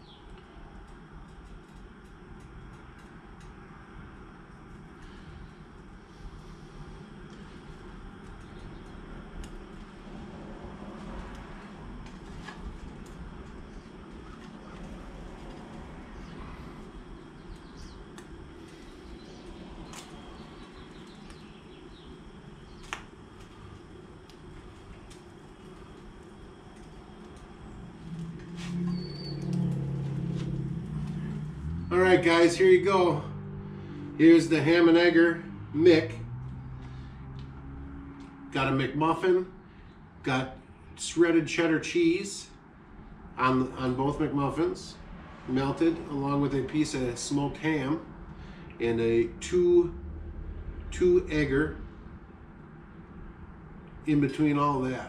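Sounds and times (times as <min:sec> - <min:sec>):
camp stove hissing: 0:00.0 - 0:33.1.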